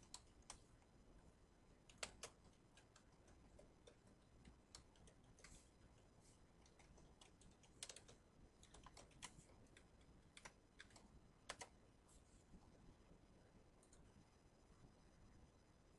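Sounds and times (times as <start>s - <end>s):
faint keyboard typing: 0.0s - 15.2s.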